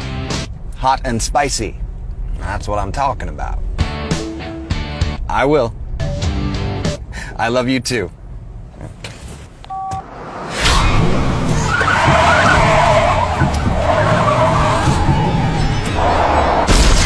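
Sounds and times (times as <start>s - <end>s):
car tyres screeching: 8.6s - 16.8s.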